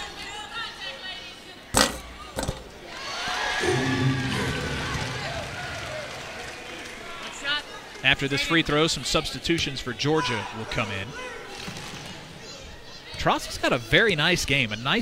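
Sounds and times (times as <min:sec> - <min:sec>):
crowd noise: 0:00.0 - 0:15.0
arena music: 0:03.6 - 0:06.7.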